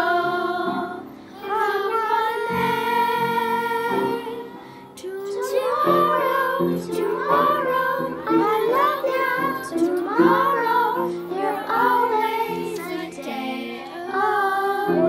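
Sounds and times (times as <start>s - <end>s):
children's choir singing: 0.0s - 15.0s.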